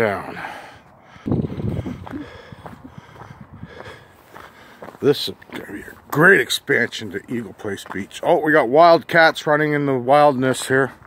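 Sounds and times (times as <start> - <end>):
person breathing: 0.2 - 5.0
footsteps on gravel: 1.7 - 11.0.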